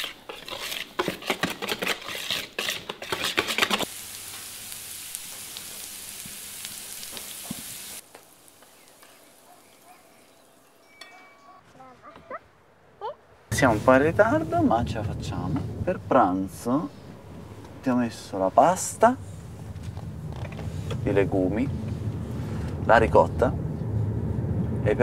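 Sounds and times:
pancakes sizzling in frying pan: 0:03.6 - 0:10.6.

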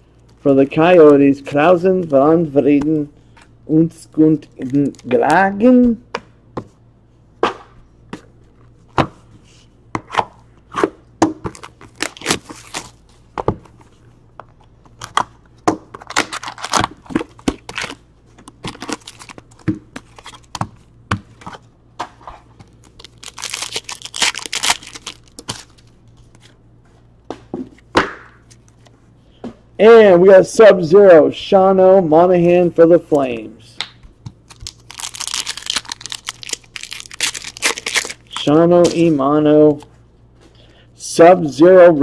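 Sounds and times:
foil wrapper crinkling and tearing: 0:11.5 - 0:13.0, 0:16.0 - 0:20.5, 0:22.7 - 0:25.9, 0:34.4 - 0:38.5.

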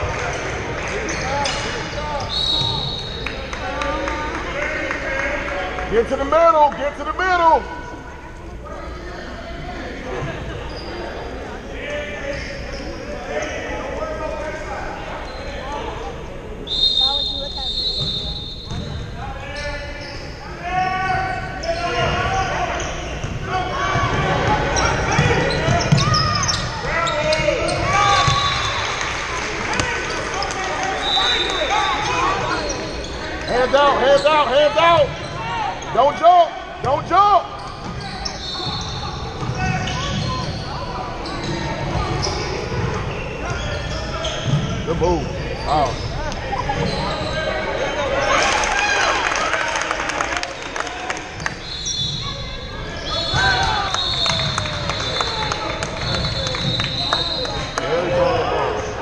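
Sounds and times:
sneakers squeaking: 0:00.0 - 0:03.7, 0:07.7 - 0:48.6, 0:50.5 - 0:59.0.

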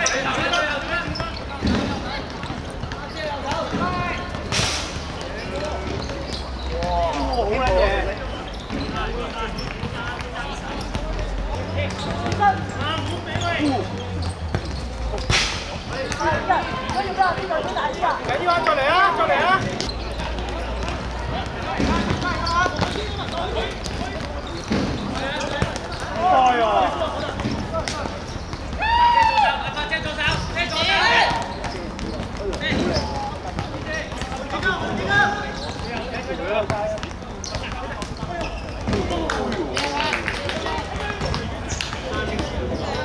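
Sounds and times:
ball kicked and bouncing: 0:00.0 - 0:18.8, 0:19.4 - 0:39.6, 0:40.6 - 0:43.0
players shouting: 0:00.0 - 0:43.0.

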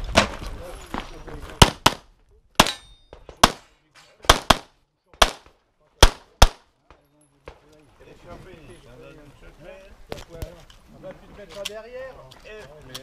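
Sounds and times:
pistol shots: 0:01.6 - 0:06.7.

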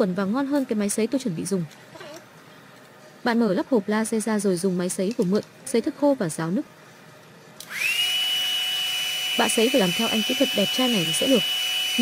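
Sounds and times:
hair dryer whine and air rush: 0:07.6 - 0:12.0.

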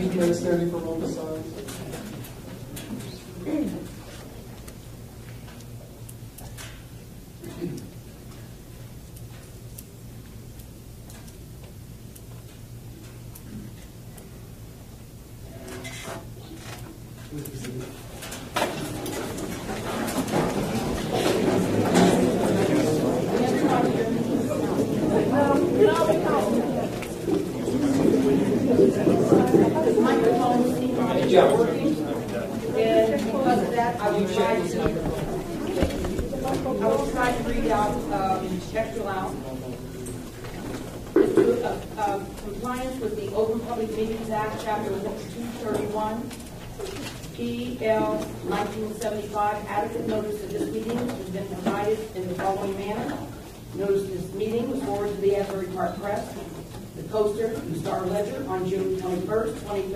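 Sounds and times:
muffled murmur of people talking: 0:00.0 - 0:59.9
faint clicks and rustles: 0:34.4 - 0:49.3.

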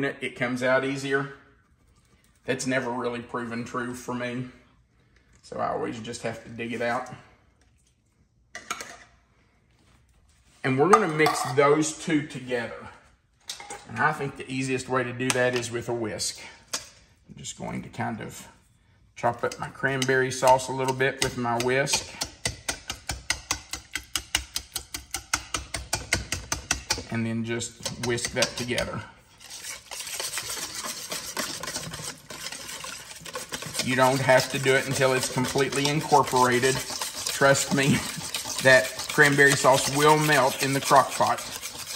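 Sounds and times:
whisk stirring in metal bowl: 0:19.3 - 0:41.9
spoon scraping inside tin can: 0:19.4 - 0:41.9.

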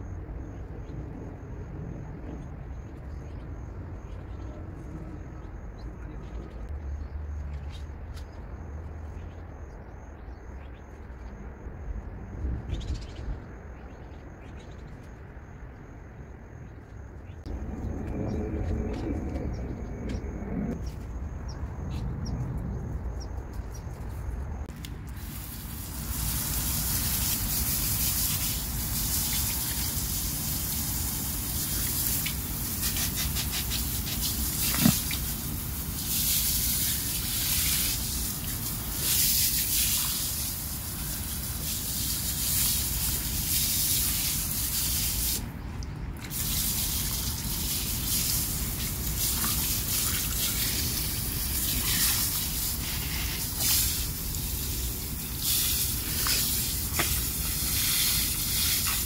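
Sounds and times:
water spraying: 0:25.0 - 0:45.5, 0:46.3 - 0:59.0.

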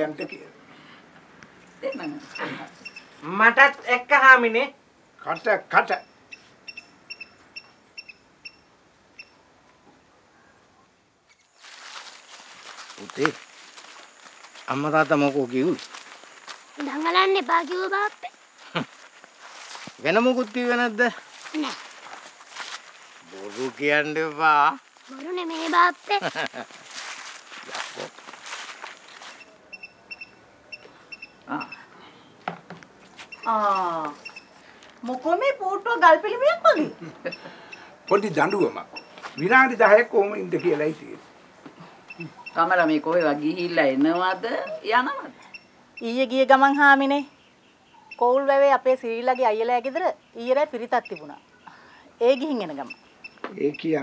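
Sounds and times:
steady outdoor hiss: 0:00.0 - 0:54.0
small bird chirping: 0:01.6 - 0:03.3, 0:05.3 - 0:09.4, 0:11.2 - 0:32.4, 0:33.0 - 0:34.8, 0:41.8 - 0:54.0
soft rustling: 0:11.3 - 0:29.6.

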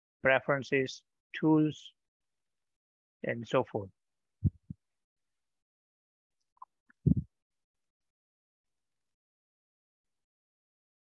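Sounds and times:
short low thumps: 0:04.4 - 0:04.8.

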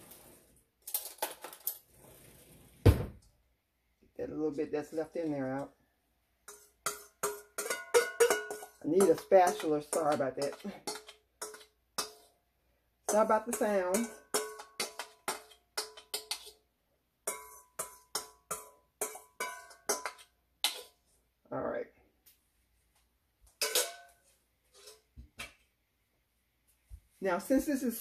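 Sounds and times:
spatula scraping bowl: 0:06.5 - 0:12.4, 0:13.1 - 0:16.7, 0:17.3 - 0:21.1, 0:24.7 - 0:25.1
taps on metal bowl ringing: 0:07.2 - 0:08.6.

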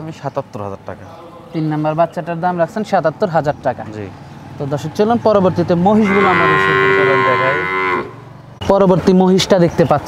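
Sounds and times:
cow mooing: 0:06.0 - 0:08.2.

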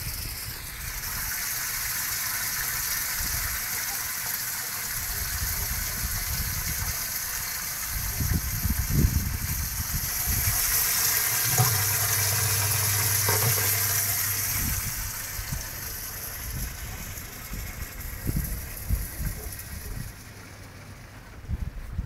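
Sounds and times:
water gushing and splashing: 0:00.0 - 0:20.4
low steady hum: 0:08.9 - 0:22.0.

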